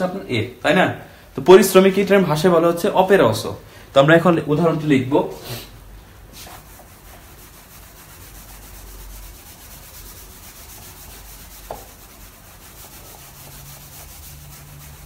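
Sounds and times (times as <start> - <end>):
eraser rubbing on whiteboard: 6.3 - 15.0.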